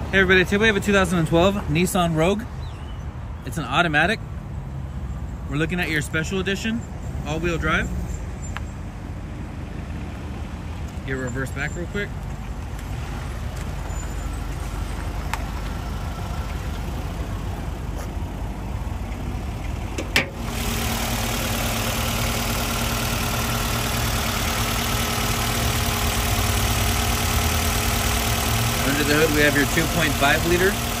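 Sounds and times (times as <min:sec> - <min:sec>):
car engine idling: 0:07.5 - 0:31.0.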